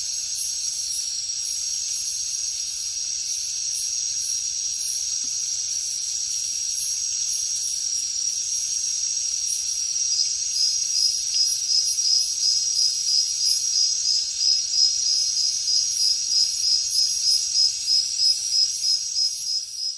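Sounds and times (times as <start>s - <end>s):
high-pitched insect chorus: 0.0s - 19.9s
regular insect chirp: 0.0s - 19.9s.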